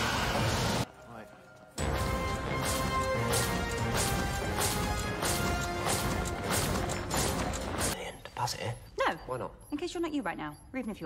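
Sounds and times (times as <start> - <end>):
orchestral music: 0.0 - 8.0
heavy metallic marching stomps: 1.8 - 8.0.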